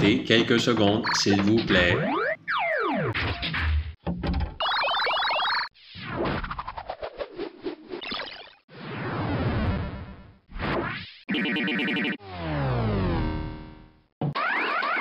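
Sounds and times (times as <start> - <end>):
synthesized robot sound effects: 0.0 - 3.7, 14.2 - 15.0
quick rising electronic chirps: 8.0 - 8.6
long falling electronic sweep: 12.2 - 13.8.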